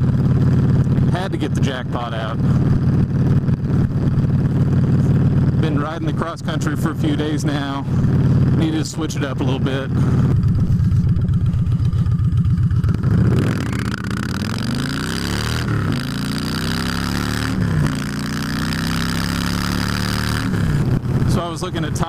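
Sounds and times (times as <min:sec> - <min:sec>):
motorcycle engine accelerating: 0:00.0 - 0:22.0.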